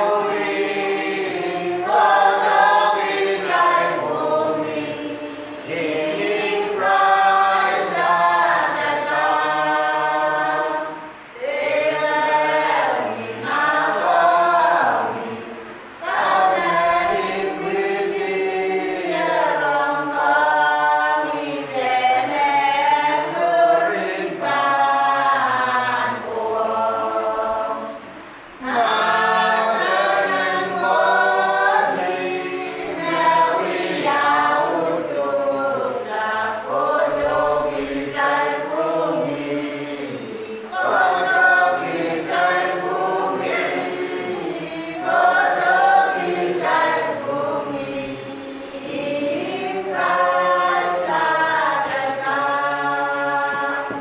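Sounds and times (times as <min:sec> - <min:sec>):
congregation singing a hymn: 0:00.0 - 0:54.0.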